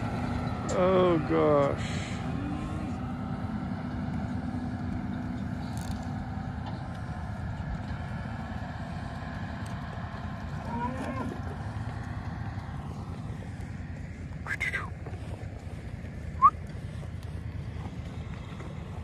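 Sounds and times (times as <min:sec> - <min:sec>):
engine running low: 0:00.0 - 0:19.0.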